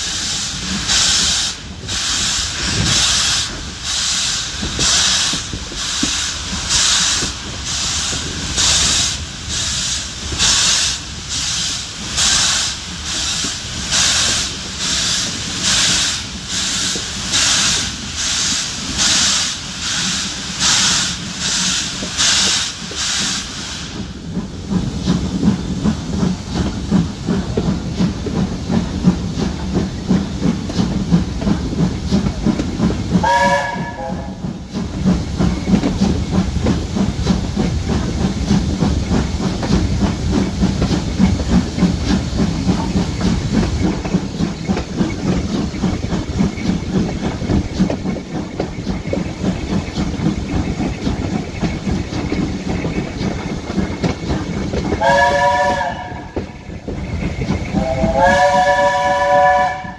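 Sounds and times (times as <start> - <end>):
steam hiss: 0.0 - 59.9
steam locomotive exhaust beat: 0.0 - 59.9
train whistle blast: 33.2 - 34.4, 55.0 - 56.4, 57.8 - 59.9.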